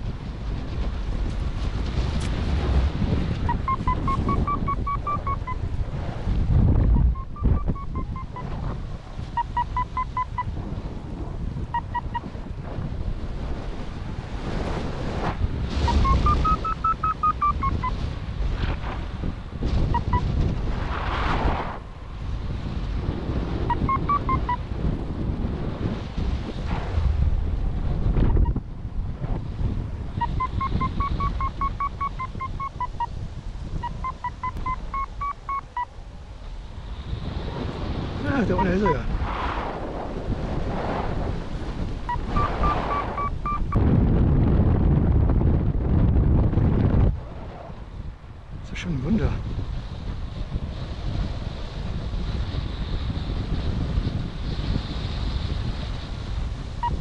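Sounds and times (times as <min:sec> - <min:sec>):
wind buffeting microphone: 0:00.0 - 0:57.0
variometer beeping: 0:03.5 - 0:05.6, 0:07.0 - 0:08.6, 0:09.4 - 0:10.5, 0:15.9 - 0:18.0, 0:19.9 - 0:20.3, 0:23.7 - 0:24.6, 0:30.2 - 0:33.1, 0:33.8 - 0:35.9, 0:42.1 - 0:43.8.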